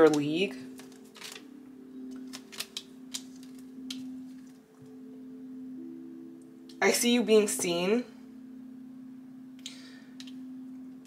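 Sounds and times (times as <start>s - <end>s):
soft background music: 0.0s - 11.0s
cards clicking and tapping: 2.1s - 4.0s.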